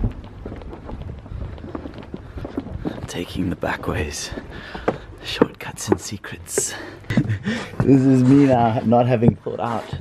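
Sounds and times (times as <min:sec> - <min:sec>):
wind rumbling on microphone: 0:00.0 - 0:05.9
footsteps: 0:00.0 - 0:10.0.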